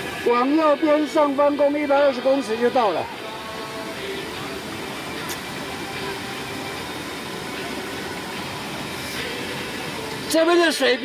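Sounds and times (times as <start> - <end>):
stream rushing over boulders: 0.0 - 11.0.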